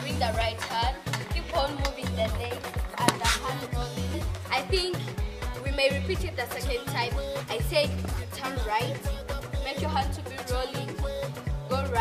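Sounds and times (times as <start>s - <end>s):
dance music with deep bass: 0.0s - 12.0s.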